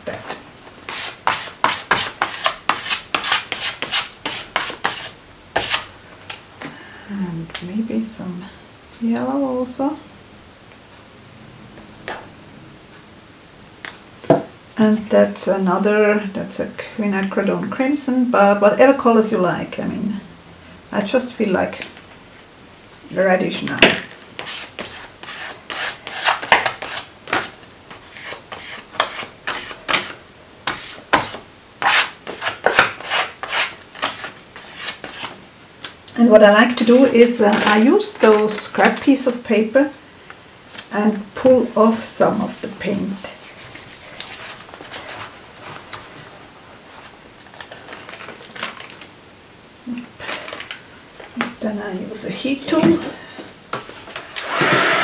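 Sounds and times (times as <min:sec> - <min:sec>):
paper rustling and scraping: 0:00.8 - 0:06.4, 0:24.4 - 0:35.4, 0:41.7 - 0:49.1.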